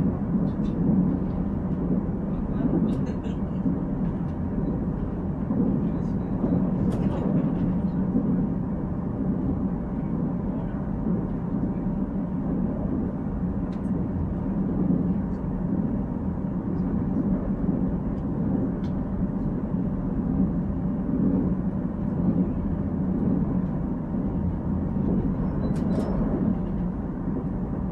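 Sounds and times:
train rumbling inside passenger car: 0:00.0 - 0:27.9.

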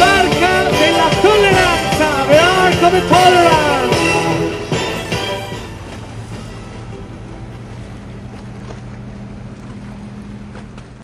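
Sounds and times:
boat engine humming: 0:00.0 - 0:11.0
water noise: 0:00.0 - 0:11.0
wind: 0:00.0 - 0:11.0.

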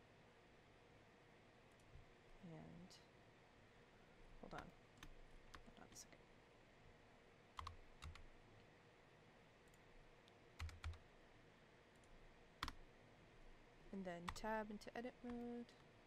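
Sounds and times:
keyboard and mouse clicks: 0:04.4 - 0:06.0, 0:07.6 - 0:08.3, 0:09.7 - 0:11.0, 0:12.0 - 0:12.8.

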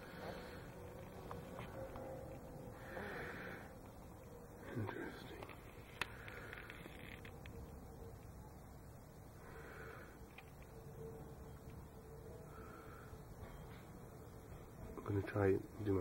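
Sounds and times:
low background noise: 0:00.0 - 0:16.0.

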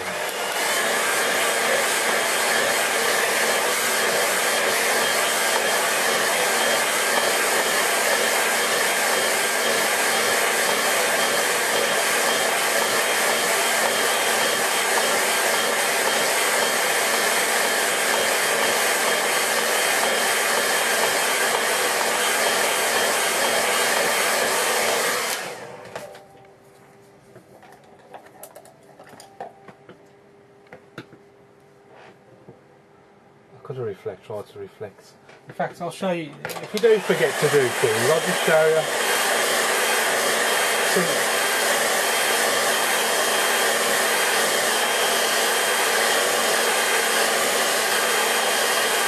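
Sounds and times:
hair dryer running: 0:00.0 - 0:26.2, 0:36.5 - 0:49.0.

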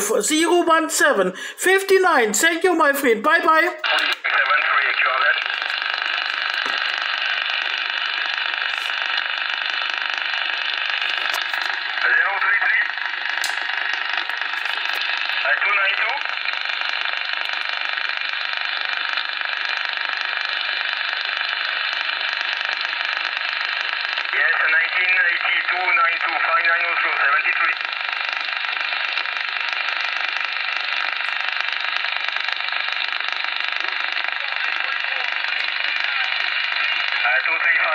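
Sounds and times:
radio band noise hiss: 0:00.0 - 0:37.9
faint garbled radio voices: 0:02.4 - 0:18.3, 0:22.2 - 0:37.9.

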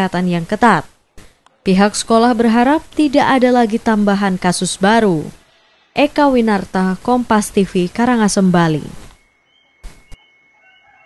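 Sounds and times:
faint outdoor ambience: 0:00.0 - 0:11.0
chicken calls: 0:09.6 - 0:11.0.

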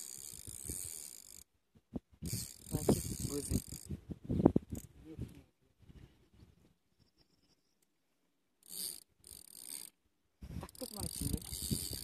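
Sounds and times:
fishing reel drag ticking: 0:00.0 - 0:01.5, 0:02.2 - 0:04.0, 0:08.6 - 0:10.0, 0:10.6 - 0:12.0.

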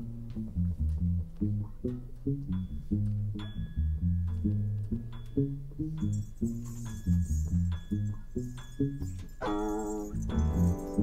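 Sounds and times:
electric bass line: 0:00.0 - 0:11.0.

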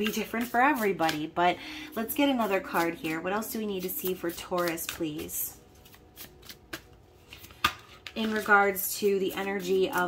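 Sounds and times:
cards shuffling with light clicks: 0:00.0 - 0:01.4, 0:02.1 - 0:10.0.

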